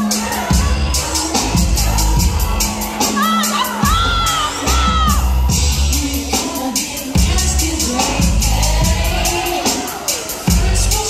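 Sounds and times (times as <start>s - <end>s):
audience screaming and cheering: 0.0s - 11.0s
loud music from speakers: 0.0s - 11.0s.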